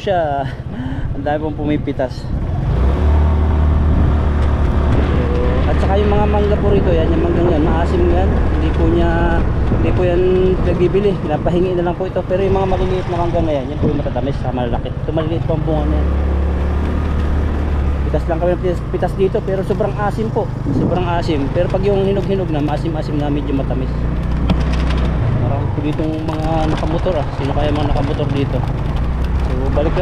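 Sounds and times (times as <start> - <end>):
road noise: 0.0 - 30.0
motorcycle engine running: 2.3 - 30.0.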